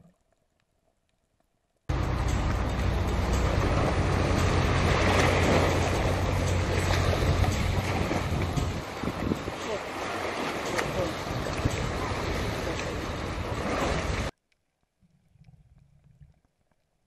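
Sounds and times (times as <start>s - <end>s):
moving water: 0.0s - 17.0s
boat motor hum: 1.9s - 14.3s
distant voices: 1.9s - 14.3s
water splashes: 1.9s - 14.3s
wind on microphone: 1.9s - 14.3s.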